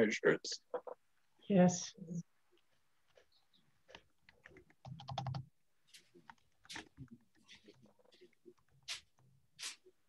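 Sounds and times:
keyboard typing clicks: 4.2s - 5.5s.

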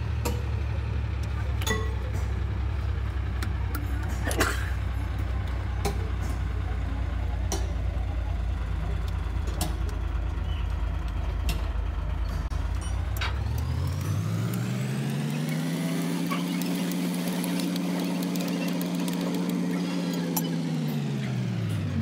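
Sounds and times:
low mechanical rumble: 0.0s - 22.0s
motor spinning up and humming: 8.3s - 22.0s
sharp metallic clicks: 11.0s - 21.0s.

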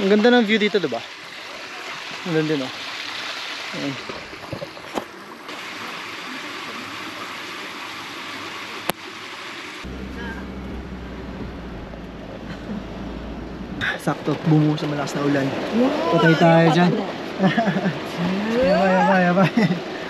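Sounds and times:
car driving hum: 8.8s - 20.0s.

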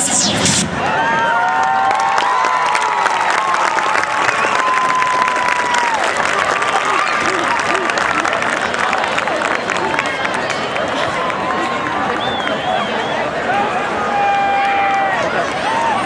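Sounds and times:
crowd cheering and clapping: 0.6s - 16.0s.

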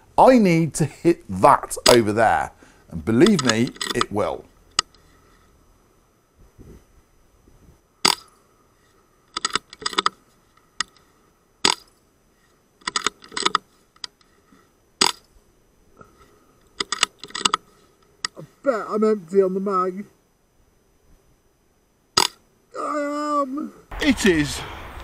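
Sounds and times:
metallic clicks of rifle bolt: 3.2s - 5.0s, 9.3s - 12.0s, 12.8s - 14.3s, 16.7s - 18.4s.

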